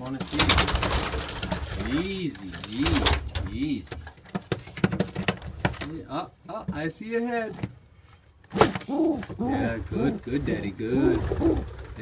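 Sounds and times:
pigeon cooing: 0:08.8 - 0:12.0.

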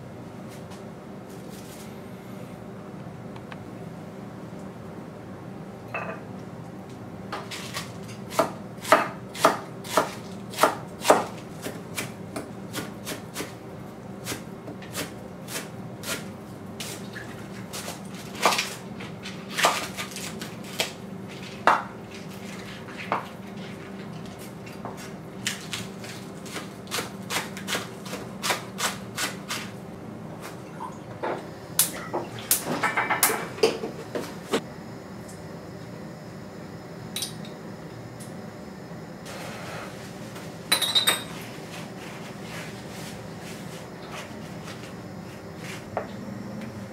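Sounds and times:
steady low hum: 0:00.0 - 0:18.2, 0:20.6 - 0:46.9
knife chopping on wooden board: 0:08.3 - 0:13.5.

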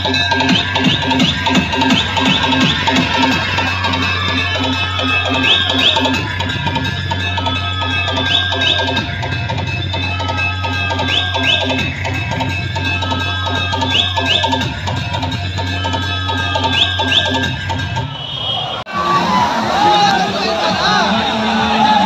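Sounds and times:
dance music with heavy bass: 0:00.0 - 0:18.2, 0:18.9 - 0:22.0.

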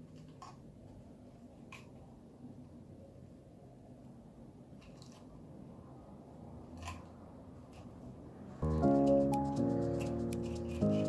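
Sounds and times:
background music with held chords: 0:08.6 - 0:11.0.

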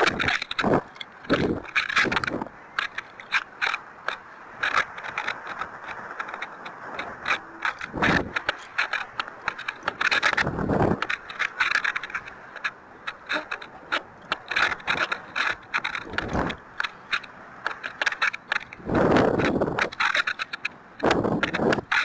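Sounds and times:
wind rushing over microphone: 0:00.0 - 0:02.6, 0:04.9 - 0:11.4, 0:13.4 - 0:16.8, 0:18.6 - 0:20.0, 0:21.0 - 0:22.0
rocket airframe clicks and rattles: 0:00.0 - 0:22.0.

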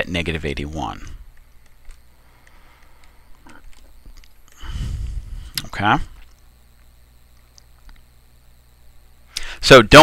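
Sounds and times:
low hum: 0:00.0 - 0:09.7.

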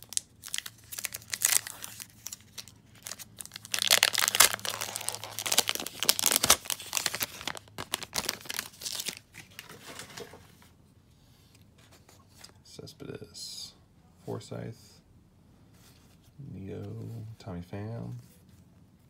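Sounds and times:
foil wrapper tearing and crinkling: 0:00.0 - 0:09.3.

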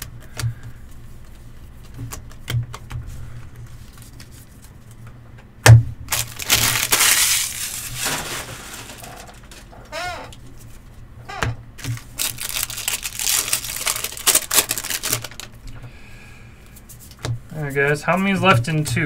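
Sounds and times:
cards rustling: 0:01.2 - 0:05.0, 0:06.1 - 0:09.8, 0:11.8 - 0:15.6
cards flipped through: 0:06.1 - 0:09.7, 0:11.8 - 0:15.5.

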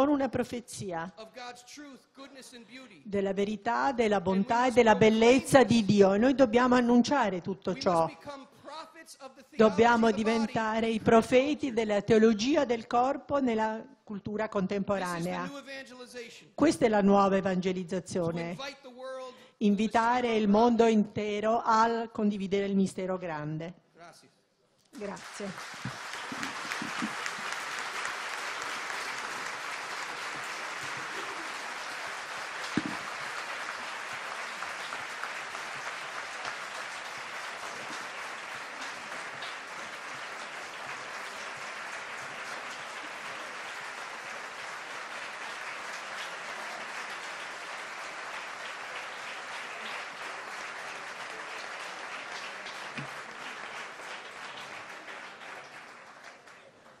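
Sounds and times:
audience applauding: 0:09.6 - 0:10.8, 0:25.0 - 0:57.0.

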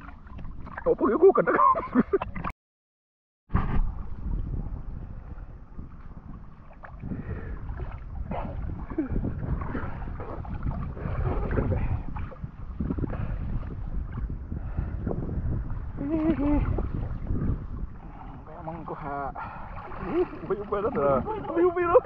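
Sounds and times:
water sloshing and lapping: 0:00.0 - 0:02.5, 0:03.6 - 0:22.0
wind buffeting microphone: 0:03.5 - 0:22.0.

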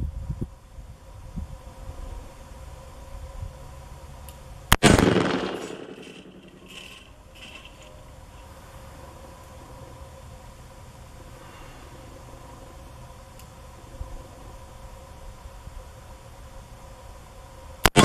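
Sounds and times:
revolver gunshot with echo: 0:04.7 - 0:06.6.

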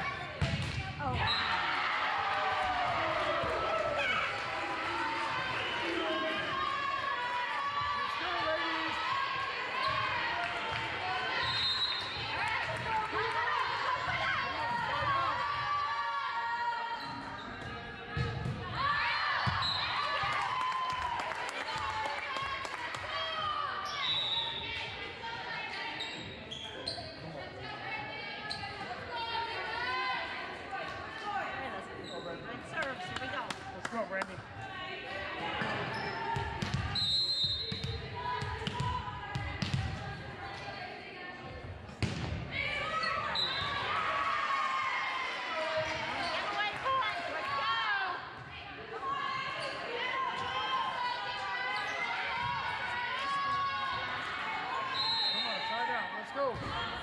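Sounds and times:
voices chattering in a gymnasium: 0:00.0 - 0:57.0.

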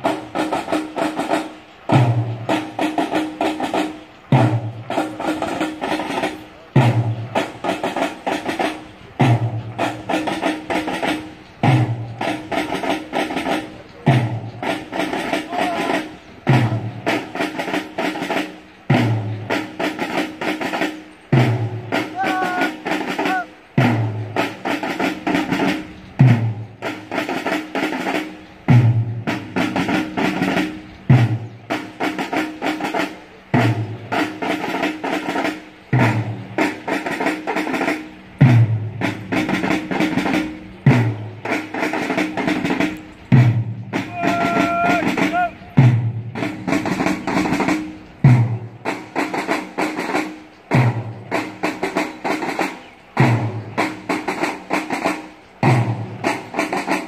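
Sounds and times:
snare drum rolls: 0:00.0 - 0:57.0.

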